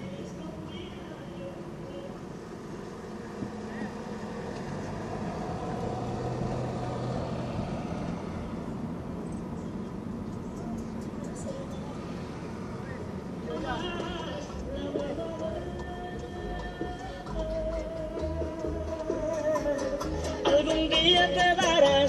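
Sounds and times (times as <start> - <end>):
car engine and tyre drone: 1.6 - 21.1.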